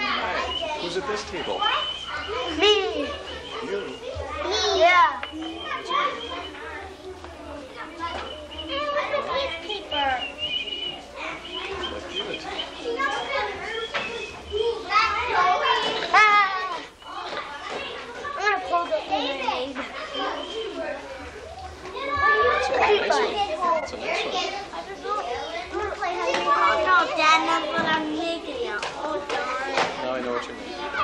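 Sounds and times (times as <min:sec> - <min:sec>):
children chattering and calling out: 0:00.0 - 0:31.0.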